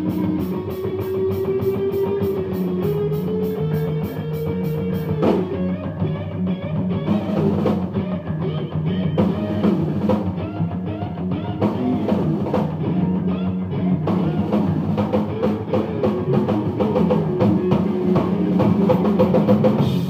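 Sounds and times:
drum kit: 0:00.0 - 0:20.0
electric guitars: 0:00.0 - 0:20.0.

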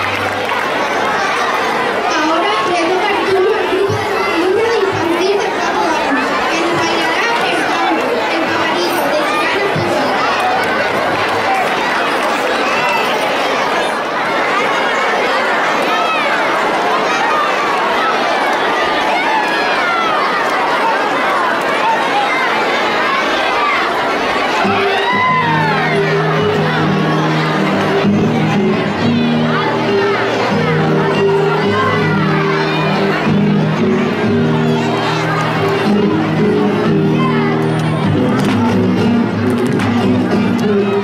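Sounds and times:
young children chattering: 0:00.0 - 0:41.0.

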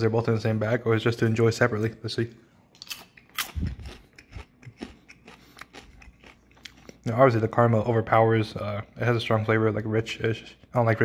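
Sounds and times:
person chewing crunchy popcorn: 0:02.8 - 0:07.2.

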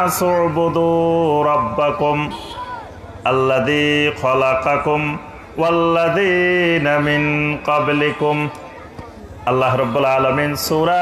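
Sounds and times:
man chanting: 0:00.0 - 0:02.5, 0:03.2 - 0:08.6, 0:09.4 - 0:11.0.

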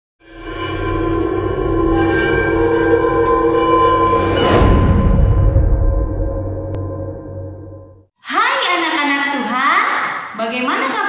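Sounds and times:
low rumble: 0:01.0 - 0:08.0.

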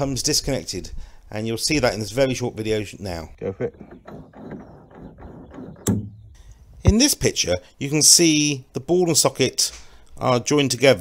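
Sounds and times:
metal parts rubbing and knocking: 0:03.4 - 0:06.9.

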